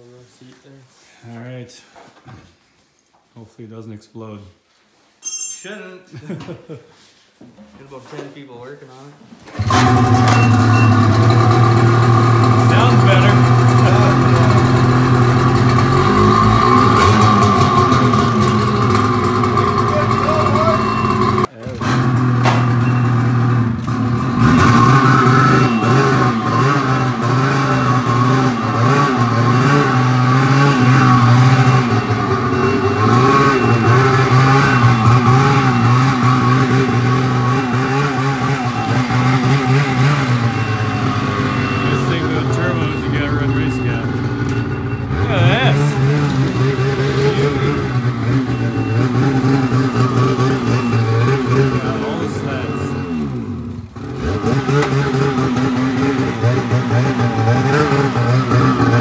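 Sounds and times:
snowmobile engine idling and revving: 9.6 - 59.0.

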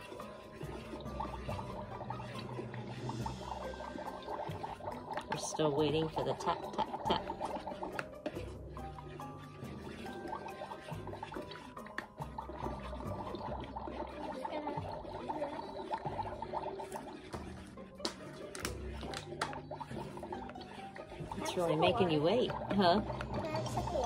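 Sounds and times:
bubbling sizzling effects: 0.0 - 24.0.

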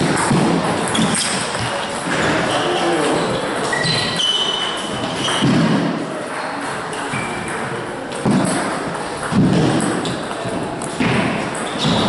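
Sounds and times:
table tennis balls clicking: 0.0 - 2.2, 3.4 - 12.0.

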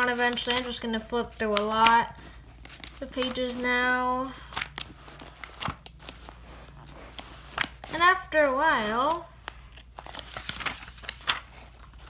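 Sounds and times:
paper pages flipping: 0.0 - 12.0.

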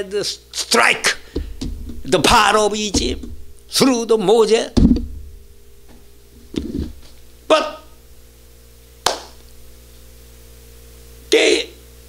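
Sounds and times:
steady low hum: 0.0 - 12.0
hands smacking: 9.0 - 9.5.

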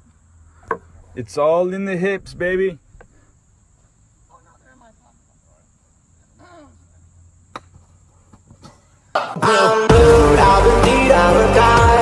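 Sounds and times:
loud music: 9.2 - 12.0.

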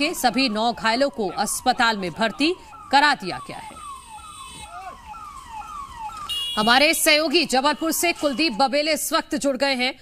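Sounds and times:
ambulance siren: 0.0 - 9.4.

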